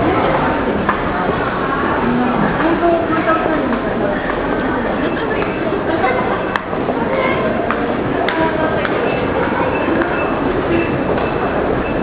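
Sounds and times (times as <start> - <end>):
rail station rumble: 0.0 - 12.0.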